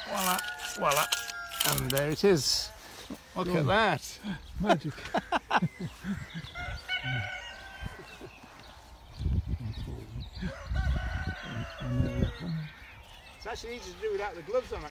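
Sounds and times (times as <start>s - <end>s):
rooster crowing: 0.0s - 1.9s, 6.0s - 8.4s, 10.4s - 12.8s.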